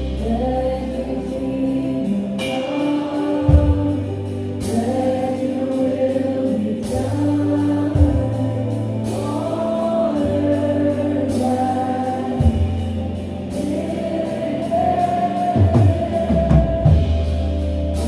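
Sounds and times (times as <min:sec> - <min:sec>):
person singing: 0:00.0 - 0:18.0
worship band playing: 0:00.0 - 0:18.0.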